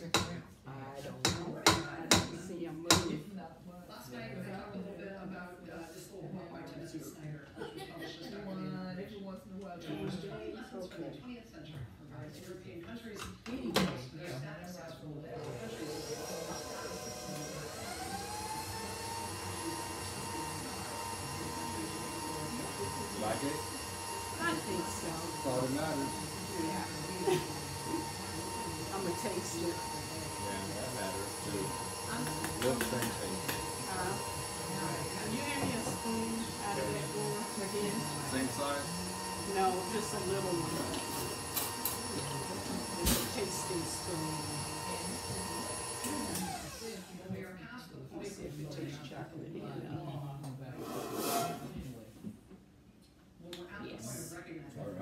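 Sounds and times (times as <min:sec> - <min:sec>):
indistinct background speech: 0:00.0 - 0:52.6
stand mixer motor humming: 0:15.5 - 0:47.3.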